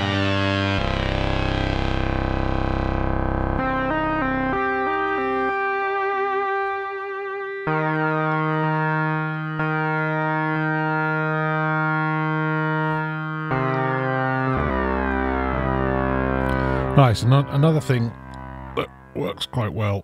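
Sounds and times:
synthesizer sync sweep lead: 0.0 - 19.5.

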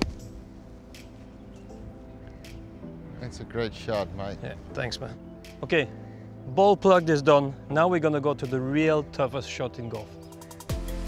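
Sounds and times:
background music with held chords: 0.0 - 11.0.

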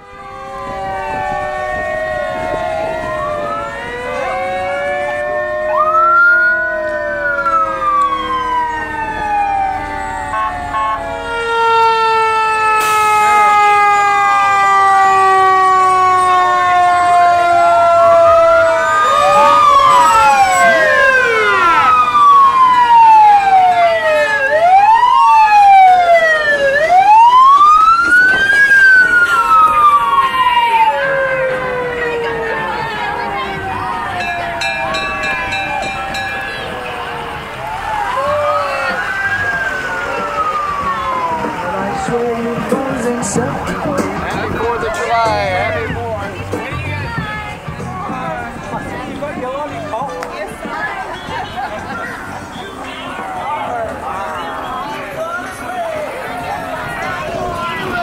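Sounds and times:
emergency sirens wailing: 0.0 - 58.0.

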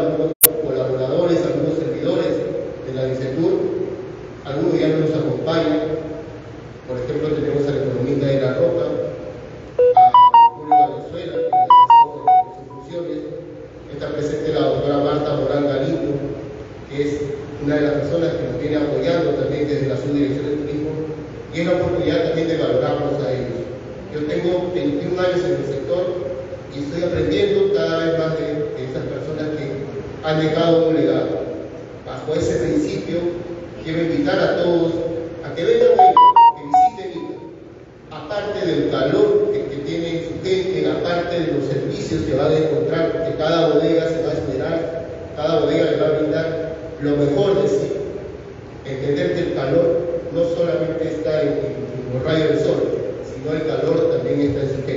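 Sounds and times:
electronic beeping melody: 9.8 - 12.9, 35.8 - 37.5.

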